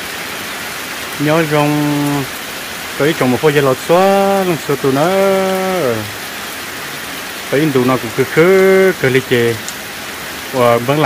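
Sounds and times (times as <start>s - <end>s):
rain falling: 0.0s - 11.0s.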